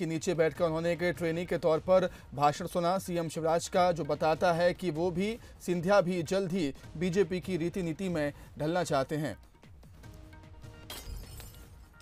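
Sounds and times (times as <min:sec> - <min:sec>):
news graphics music: 0:00.0 - 0:12.0.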